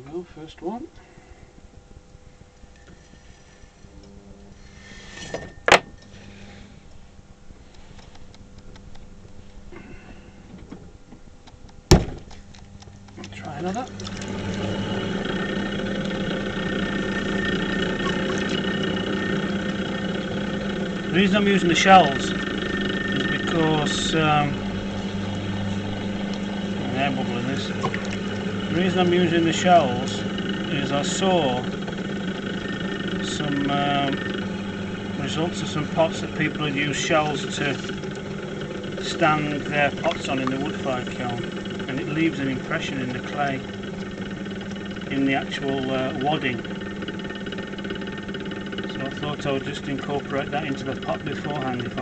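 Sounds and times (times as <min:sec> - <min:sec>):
potter's wheel humming: 0:00.0 - 0:52.0.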